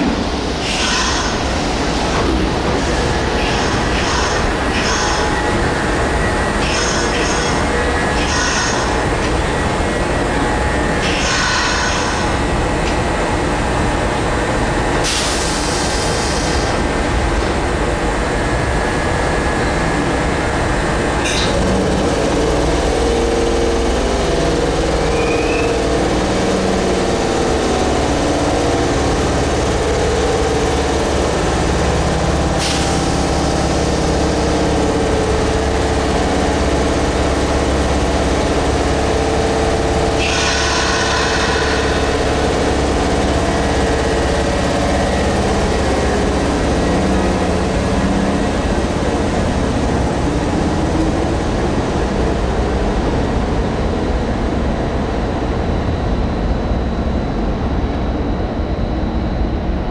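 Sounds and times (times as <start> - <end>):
train equipment humming: 0.0 - 59.9.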